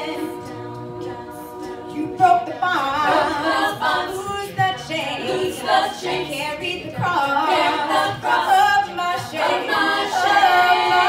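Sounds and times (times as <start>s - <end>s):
a cappella group singing in harmony: 0.0s - 11.0s.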